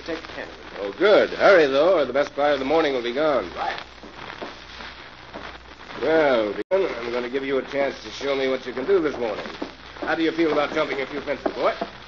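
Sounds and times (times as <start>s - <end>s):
crackling hissing surface noise: 0.0s - 12.0s
steady low hum: 0.0s - 12.0s.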